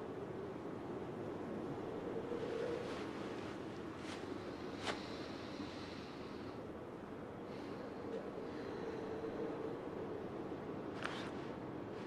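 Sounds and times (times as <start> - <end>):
faint hum: 0.0 - 12.0
wind-like rushing: 0.0 - 12.0.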